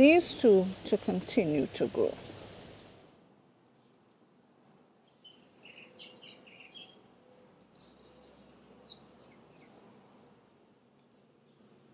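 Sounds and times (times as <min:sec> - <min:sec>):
small songbirds chirping: 0:00.0 - 0:03.0, 0:05.0 - 0:11.9.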